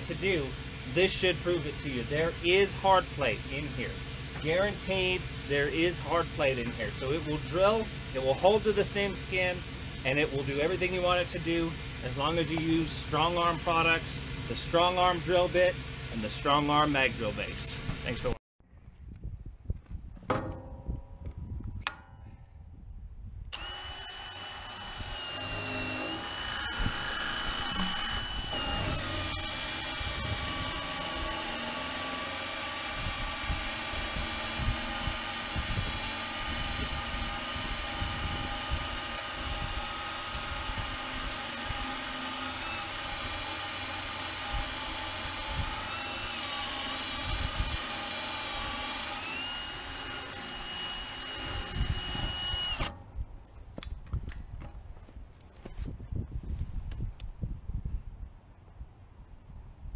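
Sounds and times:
drill motor whining into steel: 0.0s - 18.4s, 23.5s - 53.0s.

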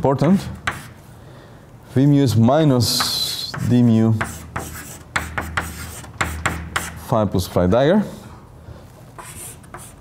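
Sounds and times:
chalk writing on blackboard: 0.6s - 1.0s, 2.9s - 7.1s, 9.2s - 10.0s.

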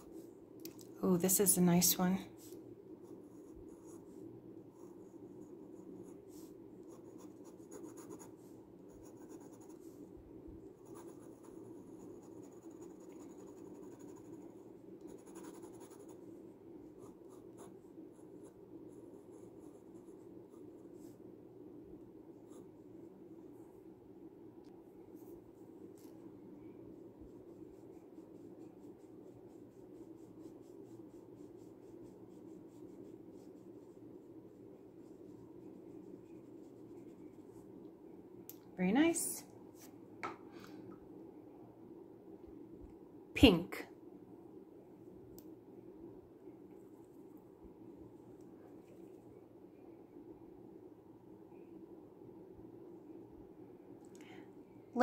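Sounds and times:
low background hum: 0.0s - 55.0s
pen nib scratching on paper: 4.8s - 9.8s, 10.8s - 16.2s, 26.9s - 37.7s.

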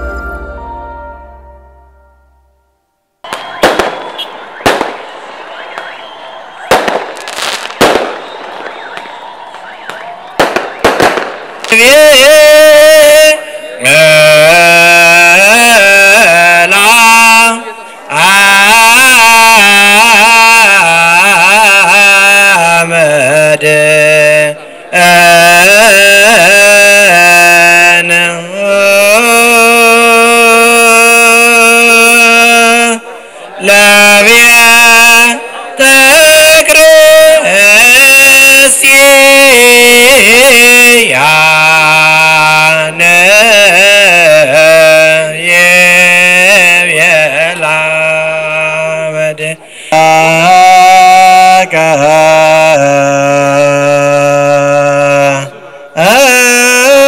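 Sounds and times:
man chanting: 11.7s - 57.0s.

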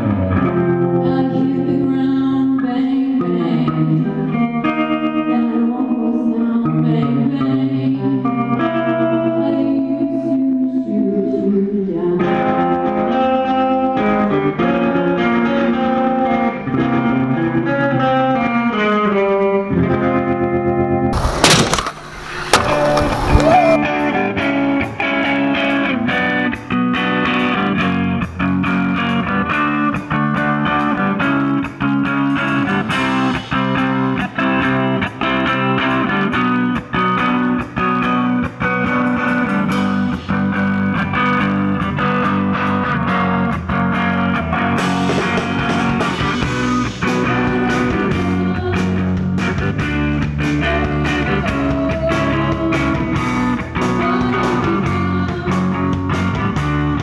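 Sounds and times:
instrumental rock band: 0.0s - 57.0s.

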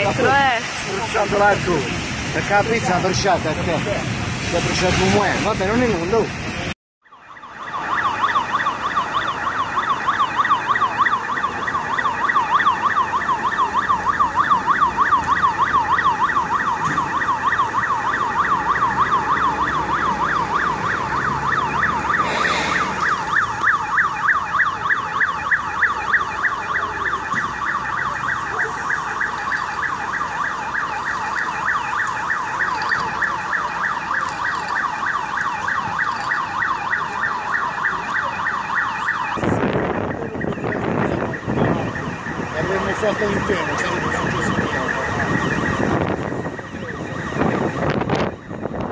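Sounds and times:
emergency siren warbling: 7.0s - 48.9s.

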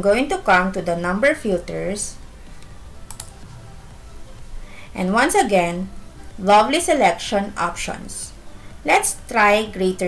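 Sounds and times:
low background hum: 0.0s - 10.0s
computer clicks: 3.0s - 3.4s.

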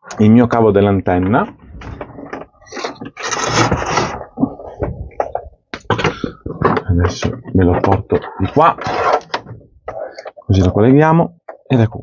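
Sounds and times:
metal plug scraping: 1.5s - 10.2s.

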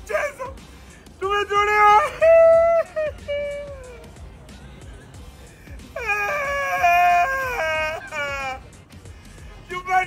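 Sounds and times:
man wailing high-pitched cry: 0.0s - 0.6s, 1.2s - 4.1s, 5.9s - 8.7s.

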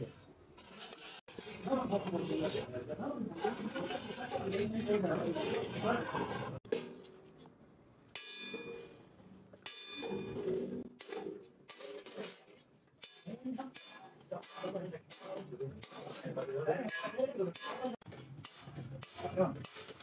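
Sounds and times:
hammer striking steel: 8.1s - 9.0s, 9.6s - 12.4s, 13.0s - 16.1s, 16.8s - 19.9s.

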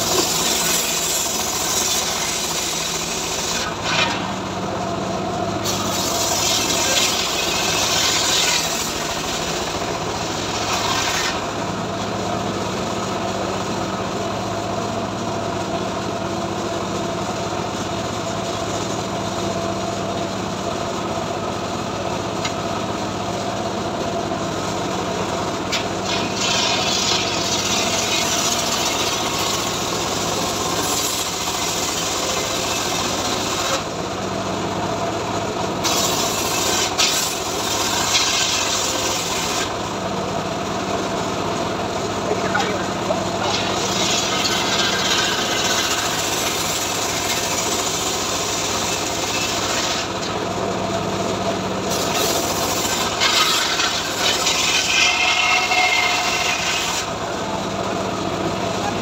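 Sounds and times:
saw cutting through log: 0.0s - 13.3s, 24.9s - 34.0s, 35.8s - 40.1s, 42.0s - 50.6s, 51.6s - 57.9s
sawmill humming: 0.0s - 59.0s.

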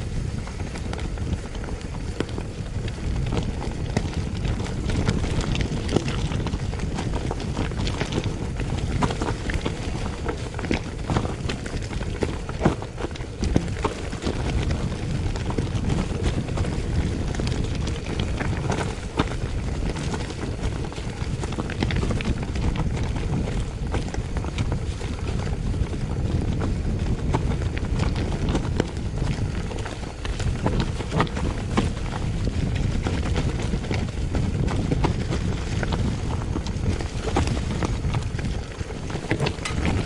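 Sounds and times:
bike knocking and rattling: 0.0s - 40.0s
bike tyres on dirt and stones: 0.0s - 40.0s
wind noise on microphone: 0.0s - 40.0s.

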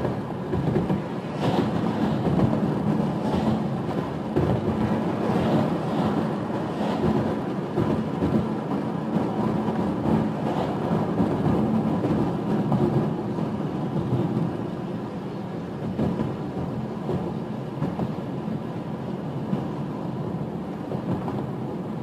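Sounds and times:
car interior road rumble: 0.0s - 22.0s.

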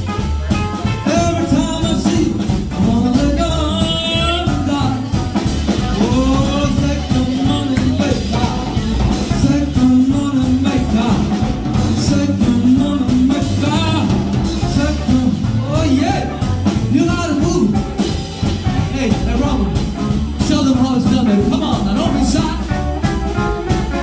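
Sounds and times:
drum kit: 0.0s - 24.0s
electric guitar: 0.0s - 24.0s
upright bass: 0.0s - 24.0s
man singing into microphone: 0.9s - 17.8s.

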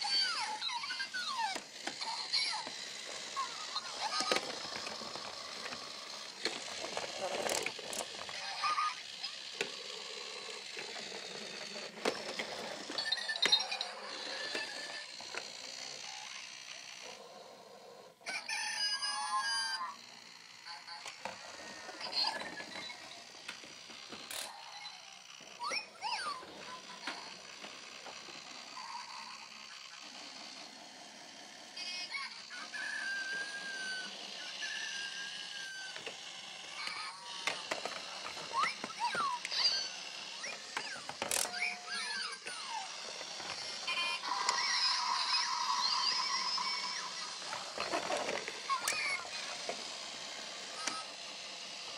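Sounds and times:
toy electronic squeaks and chirps: 0.0s - 9.4s, 10.0s - 15.1s, 18.3s - 20.0s, 20.6s - 23.2s, 24.5s - 27.3s, 28.7s - 30.2s, 31.8s - 36.1s, 36.7s - 48.0s, 48.6s - 49.7s.

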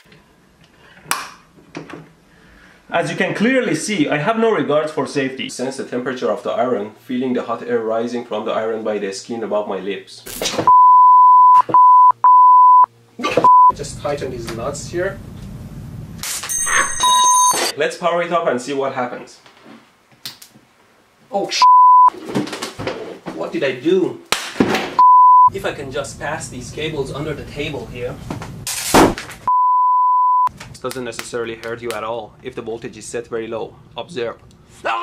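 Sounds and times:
steady beep tone: 10.7s - 13.8s, 16.6s - 17.7s, 21.6s - 22.1s, 25.0s - 25.5s, 29.5s - 30.5s
bright bell-like ring: 16.5s - 17.7s.

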